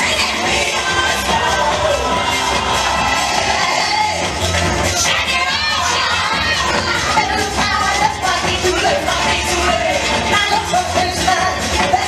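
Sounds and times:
children shouting and cheering: 0:00.0 - 0:09.2
dance music: 0:00.0 - 0:12.0.

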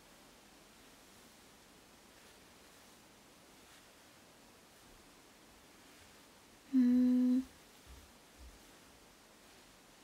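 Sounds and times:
woman humming: 0:06.7 - 0:07.5.

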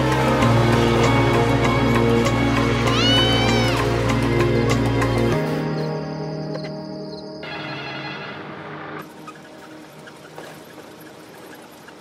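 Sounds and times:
rushing noise inside bus: 0:00.0 - 0:05.5, 0:07.4 - 0:12.0.

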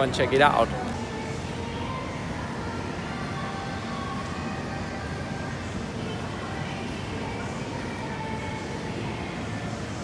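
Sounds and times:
shopping mall ambient hum: 0:00.0 - 0:10.0.

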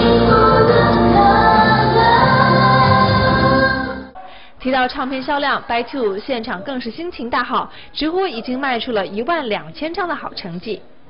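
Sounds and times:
backing music: 0:00.0 - 0:04.2
women singing pop ballad: 0:00.0 - 0:04.2.

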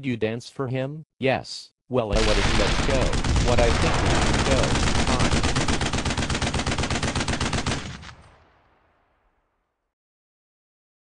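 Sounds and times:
machine-gun fire: 0:02.2 - 0:09.1.

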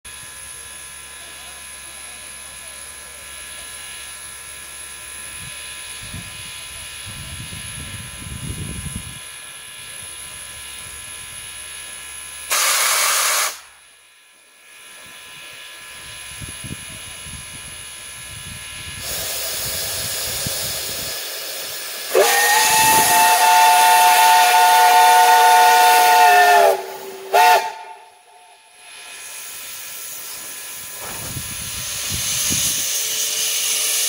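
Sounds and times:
steam hiss: 0:12.5 - 0:13.8, 0:14.9 - 0:34.0
steam locomotive whistle blast: 0:12.5 - 0:13.8, 0:19.0 - 0:29.1.

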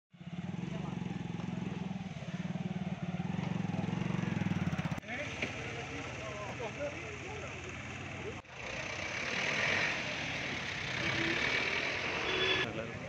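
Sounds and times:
vehicle engine running: 0:00.2 - 0:12.7
voices: 0:00.4 - 0:13.0.

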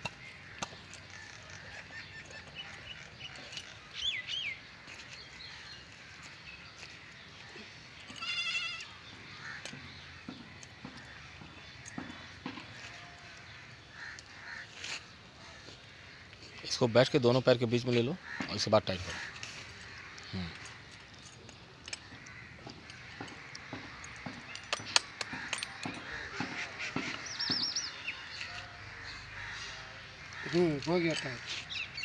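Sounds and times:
crow cawing: 0:07.1 - 0:16.4, 0:18.2 - 0:21.0, 0:21.8 - 0:32.0.

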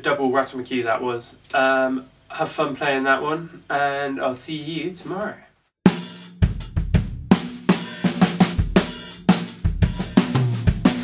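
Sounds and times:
drum kit beat: 0:05.8 - 0:11.0.

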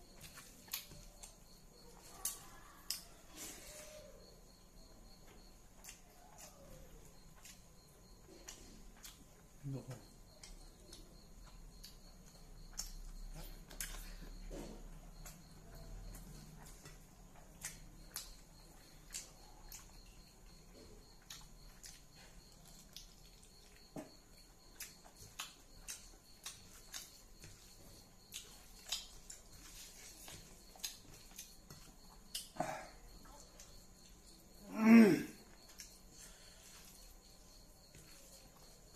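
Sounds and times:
man chewing with mouth clicks: 0:00.0 - 0:34.7, 0:35.3 - 0:38.9.

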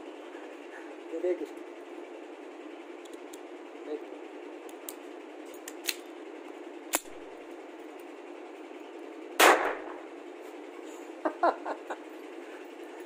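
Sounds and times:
pistol handling clicks: 0:05.6 - 0:06.1, 0:06.9 - 0:07.2
pistol shot: 0:09.4 - 0:10.0.

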